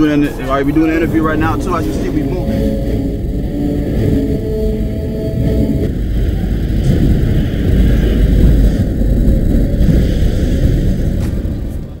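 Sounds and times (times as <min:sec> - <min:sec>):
car road and wind noise: 0:00.0 - 0:12.0.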